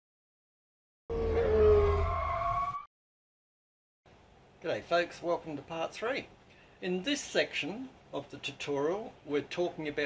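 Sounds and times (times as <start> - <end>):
rising engine-like tone: 1.1 - 2.9.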